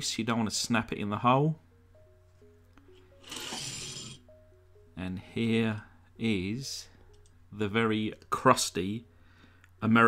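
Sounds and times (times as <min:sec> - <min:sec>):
soft background music: 0:00.0 - 0:10.0
toy car scraping on mat: 0:03.2 - 0:04.2.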